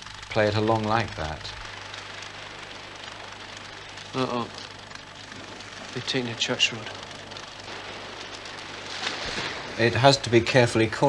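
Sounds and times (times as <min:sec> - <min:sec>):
low hum: 0:00.0 - 0:11.0
steady hiss: 0:00.0 - 0:11.0.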